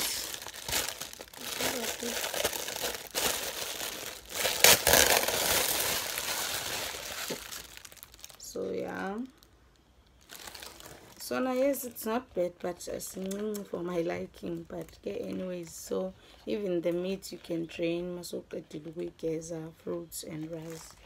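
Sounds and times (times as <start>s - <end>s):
packaging crinkling: 0.0s - 12.0s.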